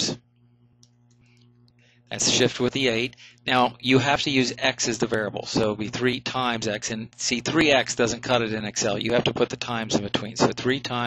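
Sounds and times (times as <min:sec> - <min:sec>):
low steady hum: 0:00.0 - 0:11.0
person speaking: 0:02.1 - 0:11.0.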